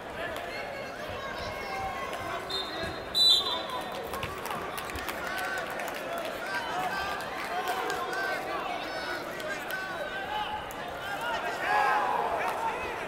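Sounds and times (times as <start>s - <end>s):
crowd chatter: 0.0s - 13.0s
referee's whistle blast: 2.5s - 3.7s.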